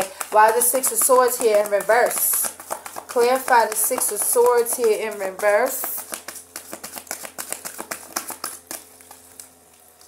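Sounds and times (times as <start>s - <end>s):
cards being shuffled: 0.0s - 10.0s.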